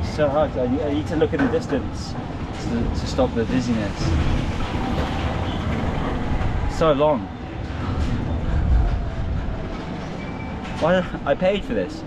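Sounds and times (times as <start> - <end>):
ferris wheel rattling rumble: 0.0 - 12.0.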